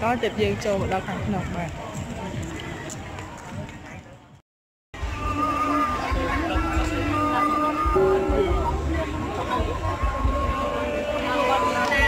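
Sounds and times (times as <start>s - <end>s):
person chanting over loudspeakers: 5.1s - 12.0s.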